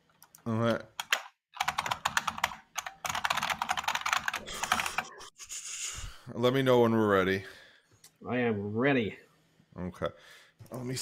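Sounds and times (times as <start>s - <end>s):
computer keyboard typing: 1.0s - 5.1s.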